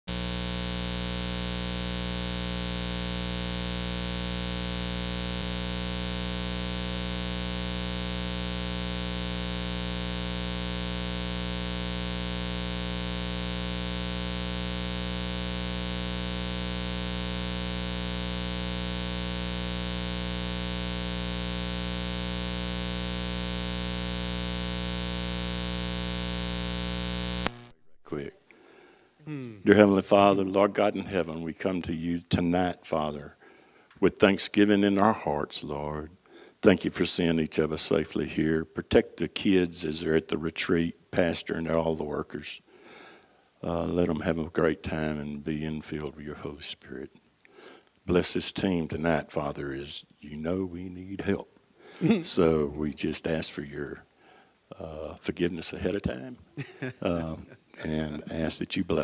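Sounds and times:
electrical mains hum: 0.1s - 59.0s.

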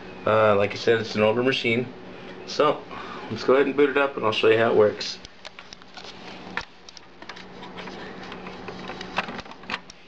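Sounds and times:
computer humming and hissing: 0.0s - 10.0s.

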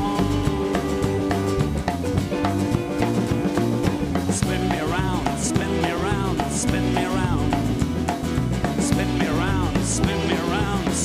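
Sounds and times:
drum kit beat: 0.0s - 11.0s
guitars and bass: 0.0s - 11.0s.

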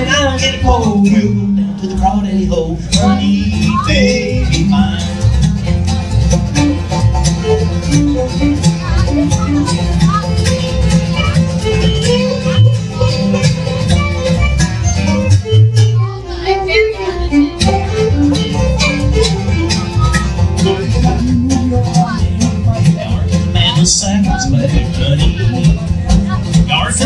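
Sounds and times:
acoustic guitar: 0.0s - 27.0s
banjo: 0.0s - 27.0s
fiddle: 0.0s - 27.0s
upright bass: 0.0s - 27.0s.

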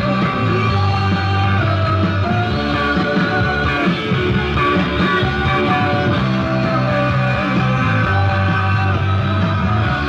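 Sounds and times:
bass guitar: 0.0s - 10.0s
guitar: 0.0s - 10.0s
rock band playing live: 0.0s - 10.0s.

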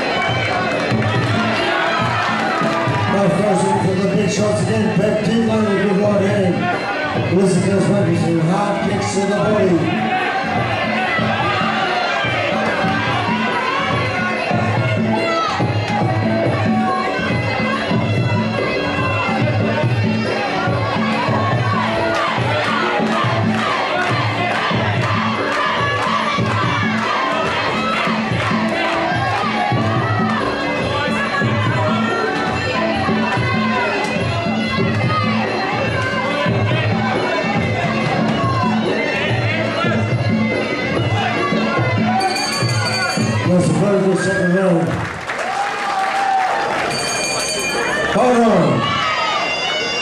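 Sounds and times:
ring music with drum beat: 0.0s - 44.5s
crowd shouting and cheering: 0.0s - 50.0s.

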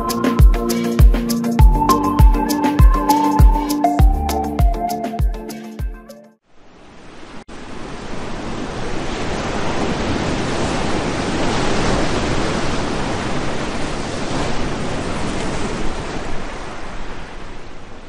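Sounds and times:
ocean waves breaking: 6.8s - 18.0s.

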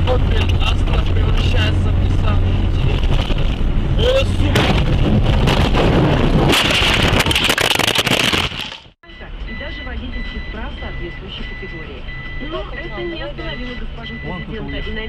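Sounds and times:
voices: 9.0s - 15.0s
pulsing high electronic beep: 9.1s - 15.0s.

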